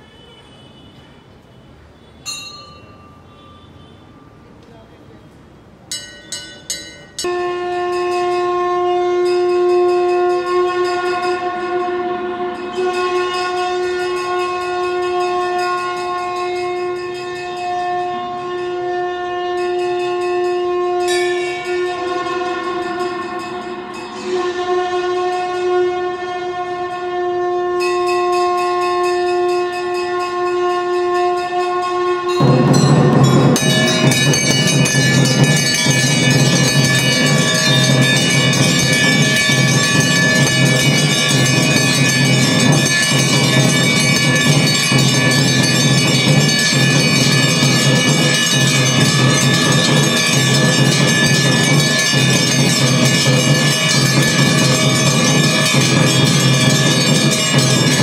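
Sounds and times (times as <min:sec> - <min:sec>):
brass bells clanging: 0:02.2 - 0:04.4, 0:05.9 - 0:58.0
steady horn-like tone: 0:07.2 - 0:52.2.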